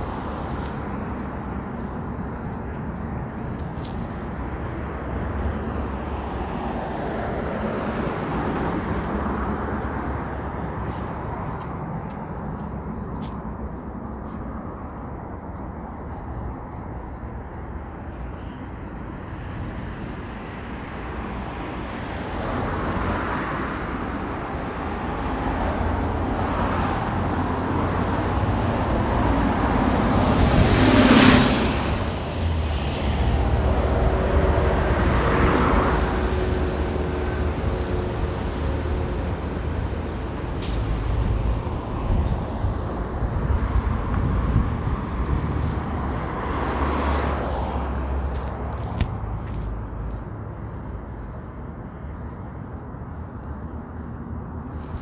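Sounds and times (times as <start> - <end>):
bus passing close: 0.0 - 15.4, 17.8 - 50.2
cars and trucks running: 0.0 - 55.0.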